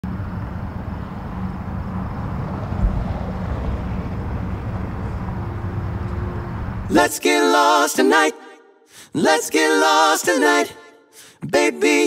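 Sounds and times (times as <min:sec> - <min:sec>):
vehicle rumbling: 0:00.0 - 0:07.0
thump: 0:02.8 - 0:03.2.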